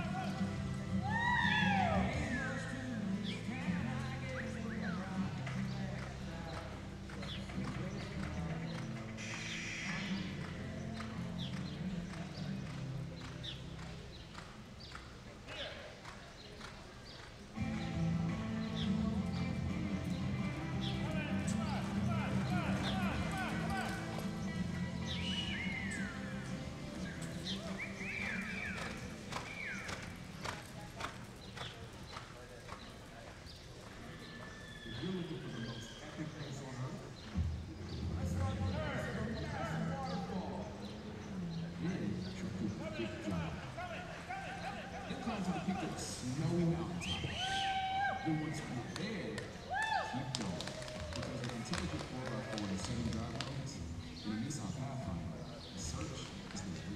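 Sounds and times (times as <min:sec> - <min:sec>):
background music: 0:00.0 - 0:13.5, 0:17.6 - 0:30.6
horse hoofbeats on dirt: 0:00.0 - 0:35.3, 0:42.8 - 0:54.2.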